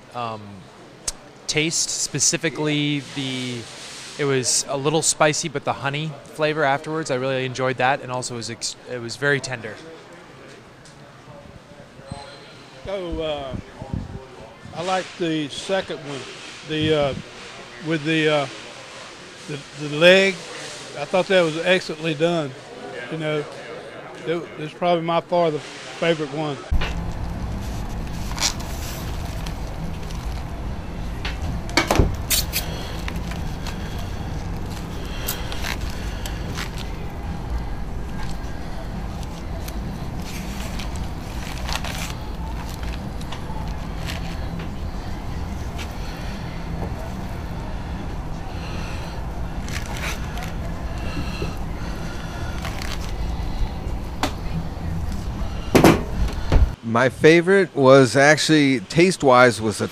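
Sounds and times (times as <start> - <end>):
steady low rumble: 26.7 - 56.8
indistinct background voices: 27.6 - 56.8.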